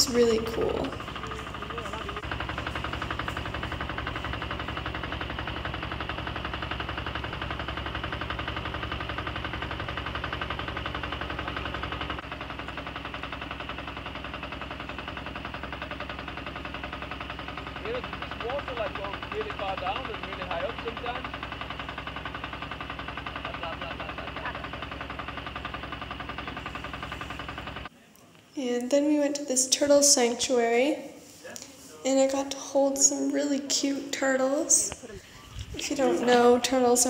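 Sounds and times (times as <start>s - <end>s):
boat engine chugging: 0.0s - 27.9s, 32.1s - 37.0s.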